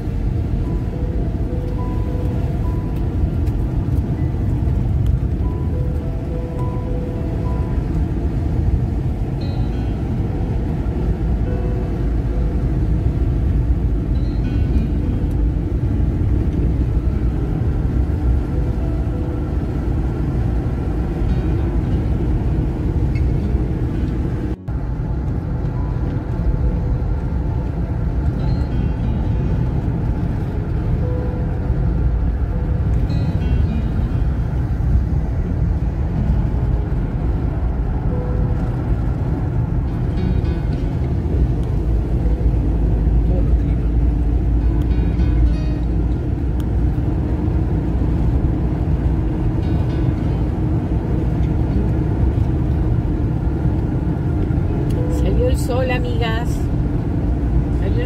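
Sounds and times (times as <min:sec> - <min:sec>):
car road and engine rumble: 0:00.0 - 0:58.0.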